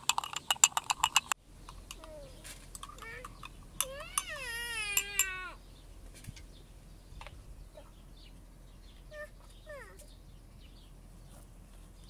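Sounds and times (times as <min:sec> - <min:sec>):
light clinks: 0:00.0 - 0:05.4
child calling: 0:02.0 - 0:05.6, 0:09.1 - 0:10.1.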